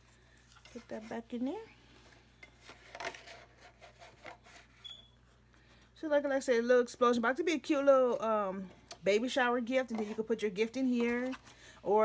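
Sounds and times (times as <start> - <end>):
cardstock rustling and scraping: 0.5 - 4.9.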